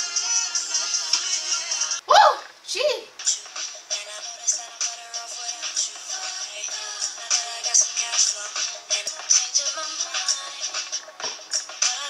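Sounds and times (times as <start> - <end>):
r and b singing: 0.0 - 2.0, 3.2 - 12.0
steady hi-hat beat: 3.2 - 12.0.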